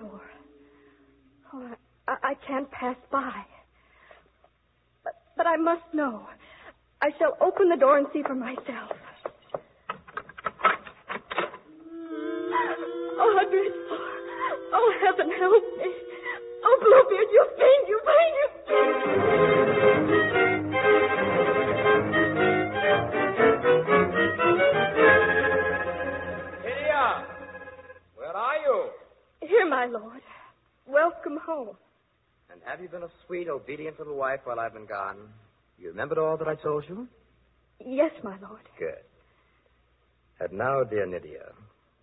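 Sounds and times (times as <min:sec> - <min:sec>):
person's wordless vocal cry: 0:11.7 - 0:18.6
music cue: 0:18.7 - 0:28.1.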